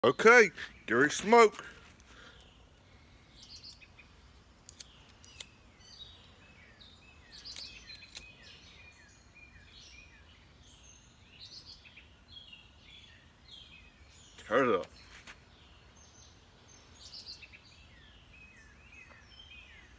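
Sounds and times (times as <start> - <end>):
songbirds chirping: 0.0 - 19.9
sharp clicks: 4.6 - 5.5, 7.4 - 8.3.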